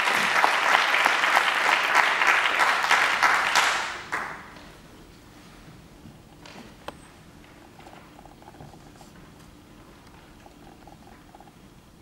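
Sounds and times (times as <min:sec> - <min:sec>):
faint rustles and ticks: 0:05.2 - 0:11.8.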